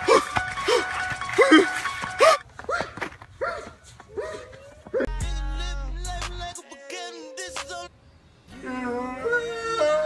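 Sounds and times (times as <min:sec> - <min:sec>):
song with sung vocal: 0:05.0 - 0:10.0.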